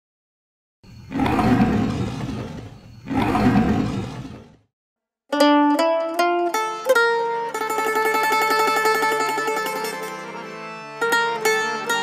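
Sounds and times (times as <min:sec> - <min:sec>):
lion roaring: 0:01.0 - 0:04.6.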